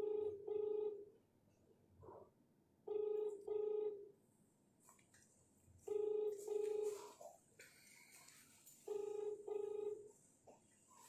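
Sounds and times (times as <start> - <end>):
telephone ringback tone: 0.0 - 1.1, 2.9 - 4.1, 5.9 - 7.2, 8.8 - 10.1.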